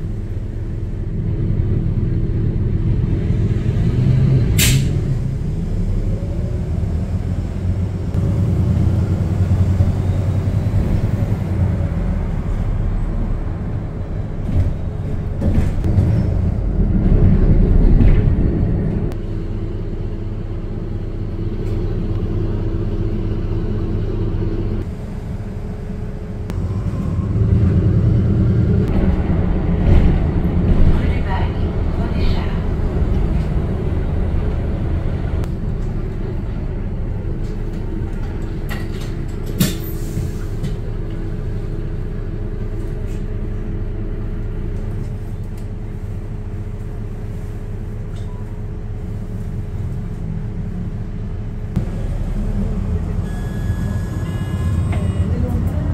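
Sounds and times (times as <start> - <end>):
bus engine drone: 0.0 - 55.9.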